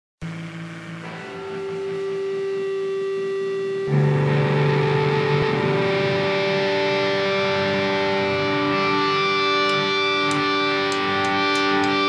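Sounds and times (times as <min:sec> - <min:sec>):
electric guitars ringing notes: 0:00.2 - 0:12.0
loud guitar chord: 0:00.2 - 0:12.0.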